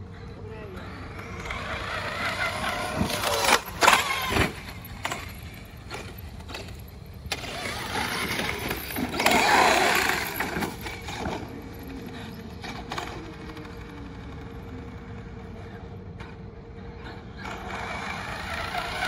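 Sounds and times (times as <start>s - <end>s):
toy truck electric motor whining: 1.0s - 15.7s, 17.0s - 19.0s.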